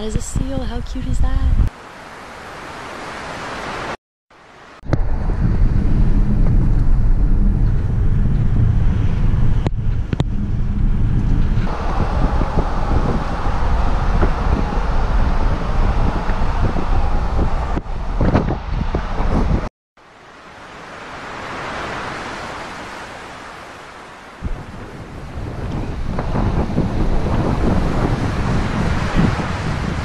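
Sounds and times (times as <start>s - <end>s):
wind buffeting microphone: 0.0s - 1.7s, 4.8s - 19.7s, 24.4s - 30.0s
road rumble: 4.3s - 30.0s.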